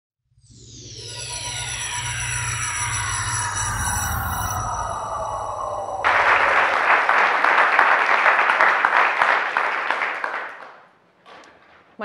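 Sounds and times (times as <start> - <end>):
audience applause: 5.5 - 10.9.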